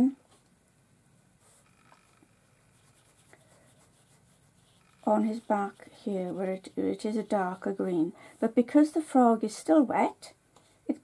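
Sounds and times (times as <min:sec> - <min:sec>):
brush dabbing paint on paper: 0:01.4 - 0:01.8, 0:02.6 - 0:09.6.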